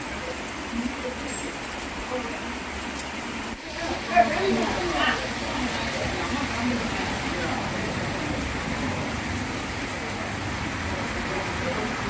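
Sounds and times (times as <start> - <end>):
heavy rain on wet road: 0.0 - 12.0.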